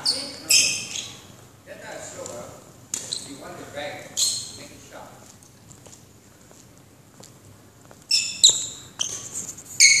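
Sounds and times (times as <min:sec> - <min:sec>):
shoes squeaking on floor: 0:00.0 - 0:01.4, 0:03.0 - 0:03.4, 0:04.0 - 0:04.8, 0:07.8 - 0:10.0.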